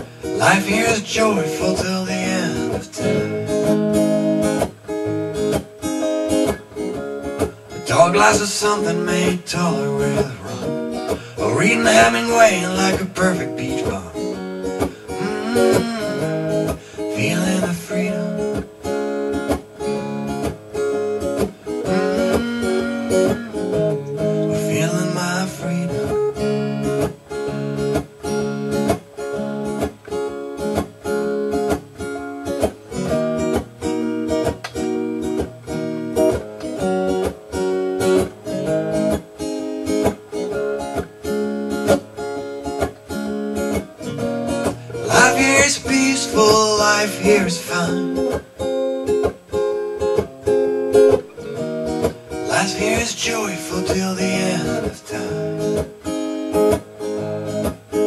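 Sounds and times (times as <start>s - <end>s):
amplified acoustic guitar strumming: 0.0s - 58.0s.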